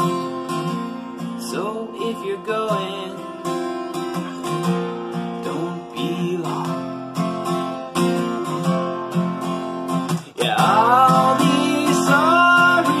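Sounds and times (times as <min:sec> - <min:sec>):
acoustic guitar strumming: 0:00.0 - 0:13.0
person singing: 0:01.4 - 0:03.4, 0:05.4 - 0:06.9, 0:10.2 - 0:13.0.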